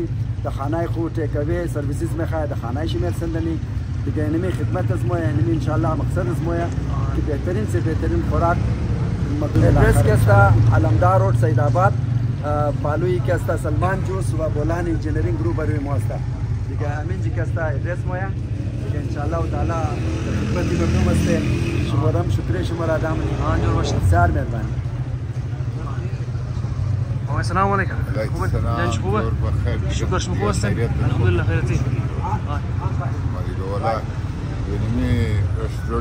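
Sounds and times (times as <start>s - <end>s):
man speaking: 0.0s - 24.9s, 27.2s - 36.0s
street traffic rumble: 0.0s - 36.0s.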